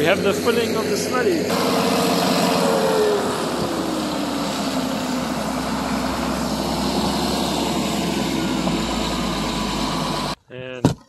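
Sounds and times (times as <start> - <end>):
bulldozer diesel engine under load: 0.0 - 10.4
engine whine falling in pitch: 0.0 - 10.4.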